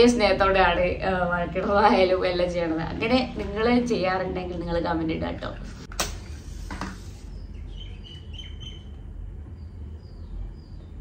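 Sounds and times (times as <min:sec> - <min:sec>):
steady low hum: 0:00.0 - 0:11.0
bird chirping: 0:07.1 - 0:11.0.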